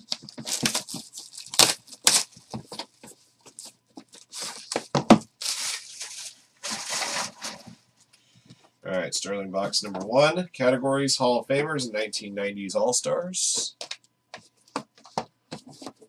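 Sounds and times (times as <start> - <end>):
plastic shrink wrap tearing: 0.0 - 2.5, 4.1 - 7.7.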